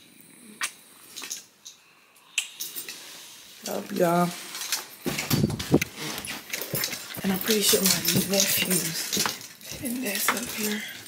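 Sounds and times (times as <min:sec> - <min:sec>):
mouth clicks: 0:00.5 - 0:00.8, 0:02.2 - 0:02.6
kiss smacks: 0:00.6 - 0:00.8.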